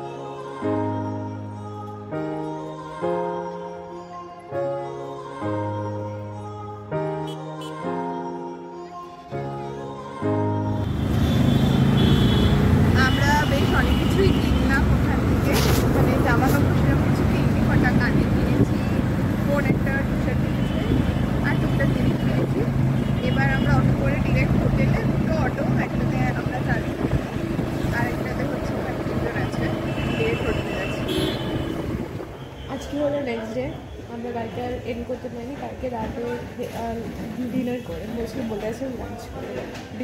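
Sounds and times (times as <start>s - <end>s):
vehicle engine running: 10.9s - 32.3s
wind noise on microphone: 13.0s - 32.6s.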